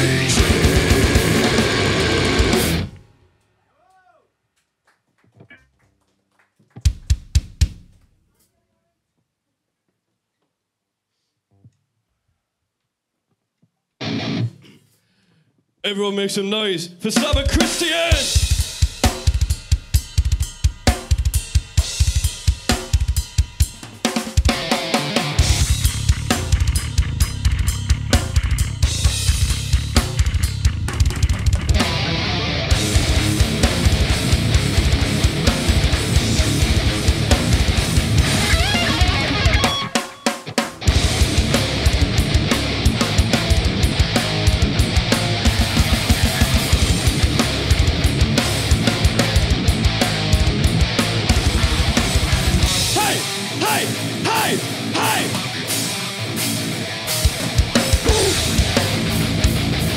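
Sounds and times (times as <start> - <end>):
distorted electric guitar chord: 0.0 - 3.0, 24.6 - 30.7, 31.3 - 40.0, 40.8 - 59.9
heavy metal band playing loud: 0.0 - 3.0, 14.0 - 14.5, 17.1 - 59.9.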